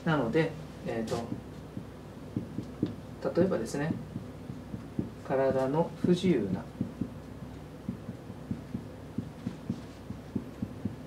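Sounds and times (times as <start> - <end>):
marker knocking on whiteboard: 1.2 - 3.0, 3.9 - 7.2, 7.9 - 11.0
low hum: 1.2 - 11.0.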